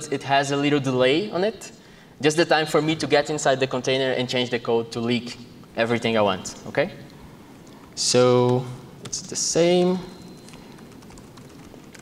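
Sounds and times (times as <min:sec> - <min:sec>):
laptop keyboard typing: 0:07.8 - 0:12.0.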